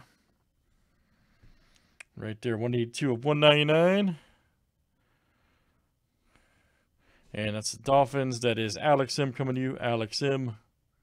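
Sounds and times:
faint breath: 0.0s - 2.0s, 4.2s - 7.4s.

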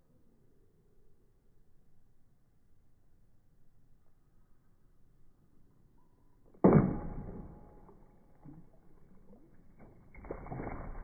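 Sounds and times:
water splash: 6.6s - 11.0s
sword hitting plastic jug: 6.7s - 8.8s, 9.8s - 11.0s.

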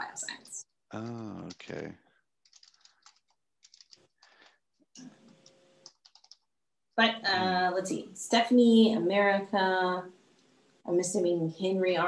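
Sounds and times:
keyboard typing: 2.4s - 4.6s, 5.2s - 6.5s.

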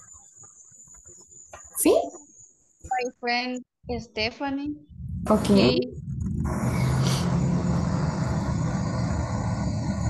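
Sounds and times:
low rumbling noise: 3.8s - 10.0s.

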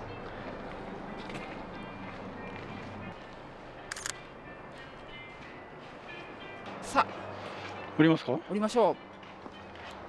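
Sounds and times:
camera shutter clicks: 3.9s - 4.2s.

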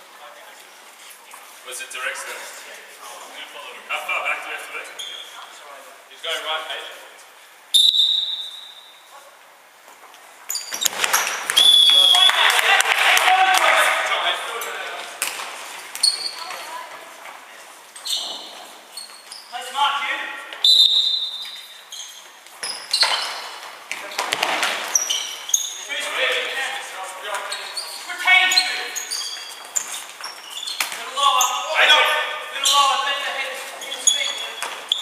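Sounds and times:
shoes squeaking on boards: 4.9s - 5.5s, 10.4s - 12.2s, 15.8s - 17.0s, 17.8s - 19.8s, 20.5s - 31.8s, 32.6s - 35.0s.

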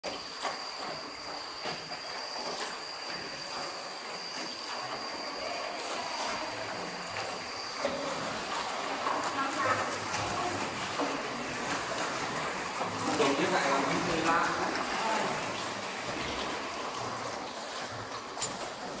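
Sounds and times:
oars knocking and splashing: 0.0s - 19.0s.

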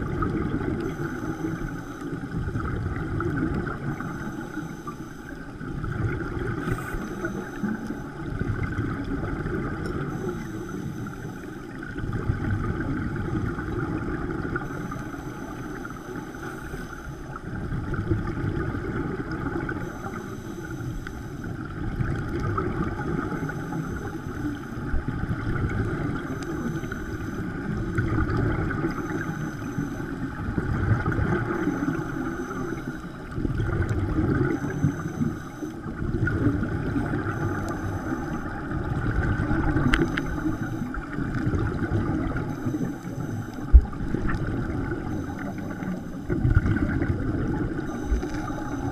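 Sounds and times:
bubbles burbling underwater: 0.0s - 16.4s, 17.3s - 20.8s, 21.4s - 48.9s
steady underwater rush: 0.0s - 48.9s.

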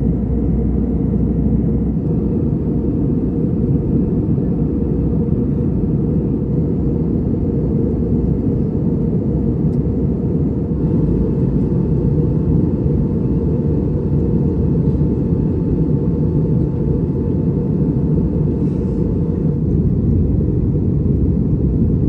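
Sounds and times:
airplane cabin engine rumble: 0.0s - 22.0s.

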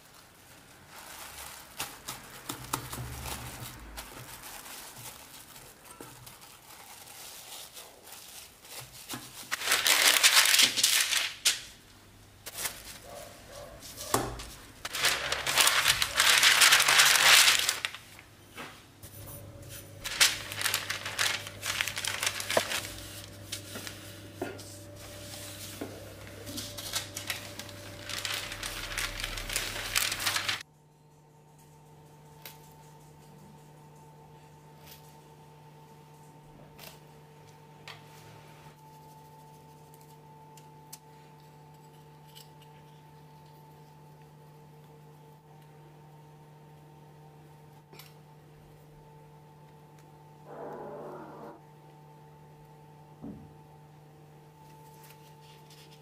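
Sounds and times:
paper and cling film crinkling: 0.0s - 11.8s, 12.4s - 18.3s, 20.0s - 30.6s, 54.6s - 56.0s.

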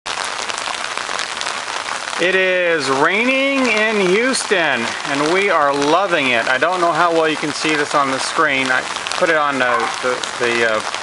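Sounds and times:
steady rain falling: 0.1s - 11.0s.

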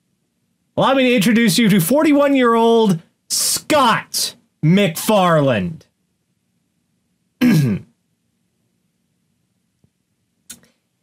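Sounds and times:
person clearing throat: 7.4s - 8.0s.

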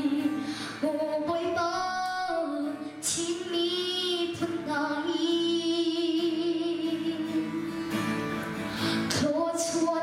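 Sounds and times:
acoustic guitar: 0.0s - 10.0s
girl singing slow song: 0.0s - 10.0s.

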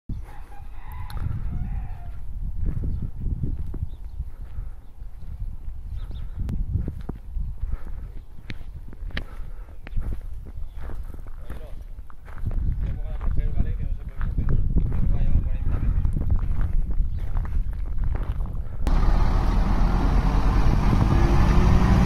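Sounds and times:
wind rumbling on microphone: 0.1s - 22.0s.

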